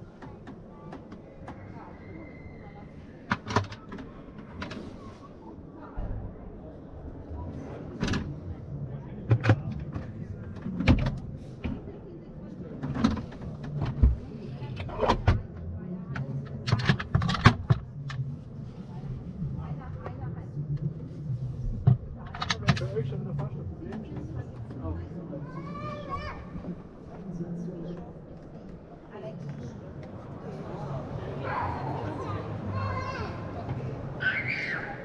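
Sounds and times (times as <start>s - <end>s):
background chatter: 0.0s - 35.0s.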